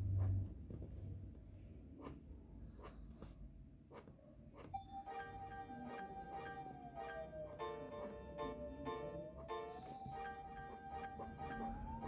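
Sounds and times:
steady musical note: 4.8 - 12.0.

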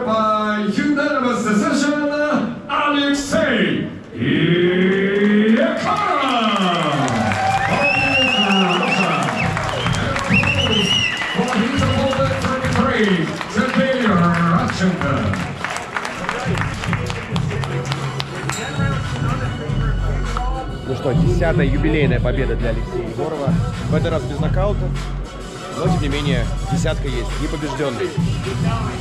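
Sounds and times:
man announcing: 0.0 - 25.0, 25.7 - 29.0
crowd applause: 4.8 - 19.7
arena music: 6.8 - 29.0.

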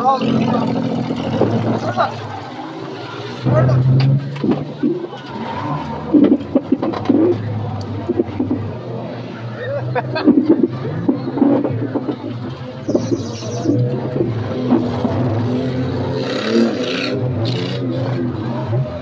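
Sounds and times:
car engine drone in cabin: 0.0 - 19.0
knocks and rattles: 3.4 - 9.0, 10.0 - 15.9.

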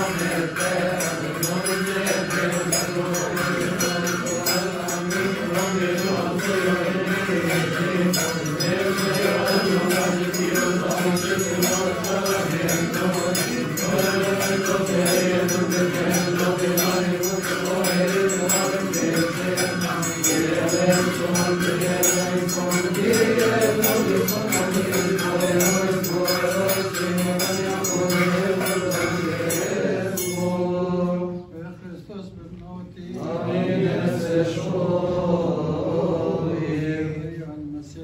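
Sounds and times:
hand cymbals and triangle beat: 0.0 - 31.4
men chanting a hymn: 0.0 - 38.0.

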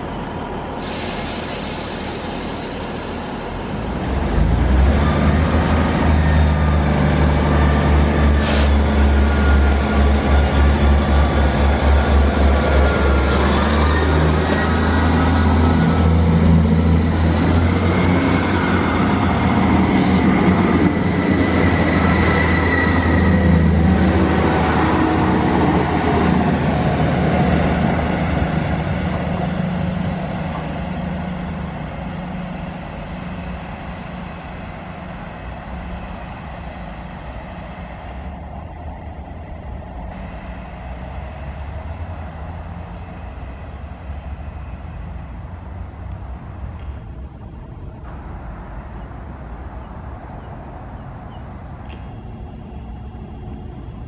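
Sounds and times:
diesel train engine rumble: 0.0 - 54.0
distant diesel train running: 0.0 - 54.0.

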